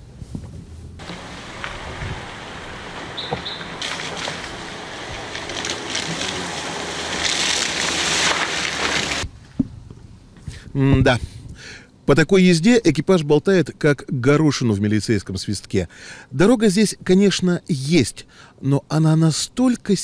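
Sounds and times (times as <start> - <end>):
car driving over muddy track: 1.0 - 9.2
tyres sloshing through mud: 1.0 - 9.2.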